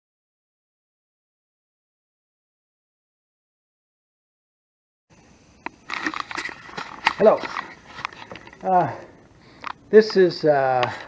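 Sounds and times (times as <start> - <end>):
camera handling clicks and rustles: 5.6 - 8.7, 9.5 - 11.0.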